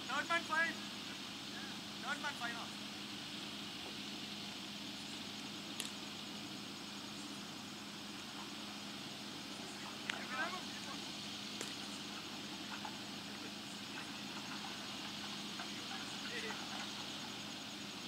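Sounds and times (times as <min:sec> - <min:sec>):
low hum and hiss: 0:00.0 - 0:18.0
faint clicks: 0:05.7 - 0:06.0, 0:10.0 - 0:10.2, 0:11.6 - 0:12.0
distant shout: 0:09.6 - 0:17.2.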